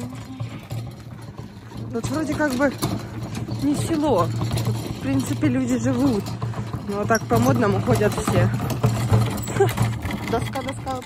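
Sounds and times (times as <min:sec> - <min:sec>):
metal hand cart rattling on gravel: 0:00.0 - 0:11.0.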